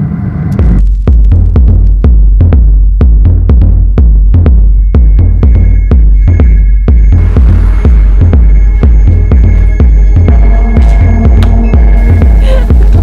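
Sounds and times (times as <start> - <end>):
heavy throbbing bass beat: 0.5 - 13.0
electronic dance music: 1.0 - 13.0.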